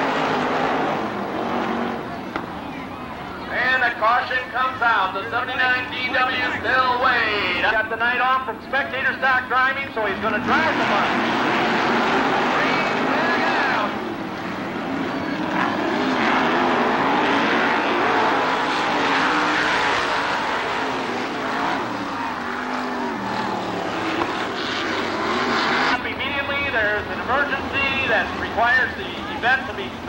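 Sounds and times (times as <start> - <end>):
race car engines at speed: 0.0 - 30.0.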